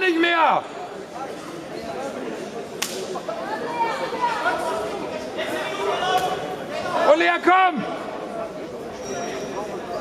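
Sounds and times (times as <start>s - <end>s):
echoing voices and chatter: 0.0s - 10.0s
sharp slap: 2.8s - 3.1s.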